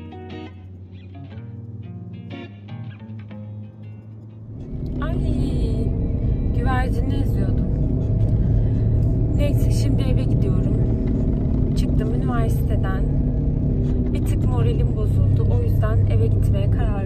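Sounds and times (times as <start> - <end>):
car cabin road and engine rumble: 0.0 - 2.2, 3.9 - 17.0.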